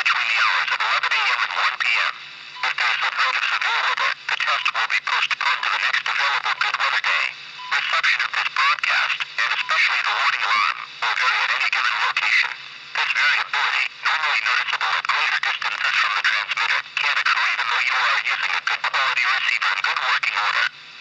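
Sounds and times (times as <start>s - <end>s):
announcer voice through small speaker: 0.0s - 20.7s
steady low hum: 0.0s - 21.0s.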